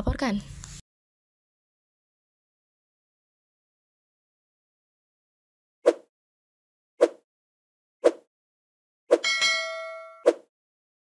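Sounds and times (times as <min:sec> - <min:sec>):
bright bell ding: 0:09.2 - 0:10.2.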